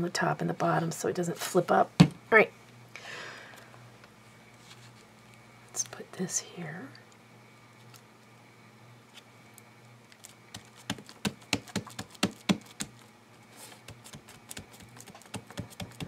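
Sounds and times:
steady low hum: 0.0 - 16.0
fingers tapping paper: 10.5 - 13.0, 13.8 - 16.0.

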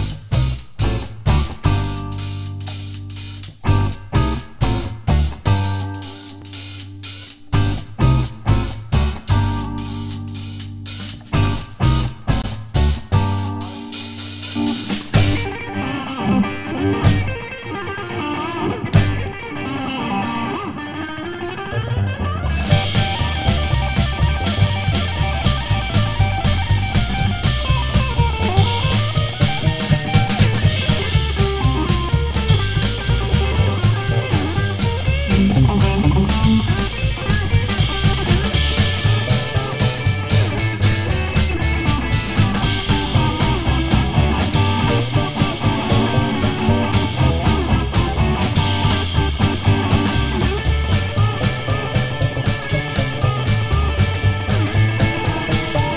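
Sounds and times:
drum hits: 0.0 - 15.7, 17.0 - 17.5, 19.0 - 19.4, 22.4 - 55.9
electric guitar: 0.0 - 55.9
rockabilly band playing: 0.0 - 55.9.

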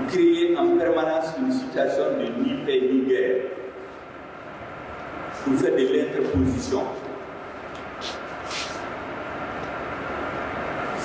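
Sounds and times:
faint hum: 0.0 - 11.0
mechanical background noise: 0.0 - 11.0.

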